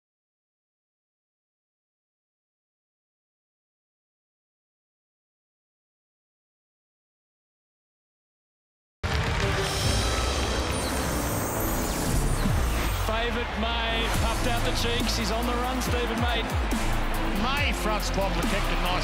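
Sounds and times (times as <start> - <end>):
background music with steady beat: 9.1 - 19.0.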